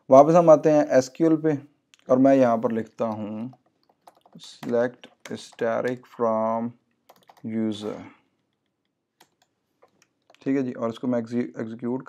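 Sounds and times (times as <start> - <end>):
typing on computer keyboard: 3.0 - 4.4, 7.1 - 7.5, 9.2 - 10.4
man speaking short words: 7.4 - 8.1.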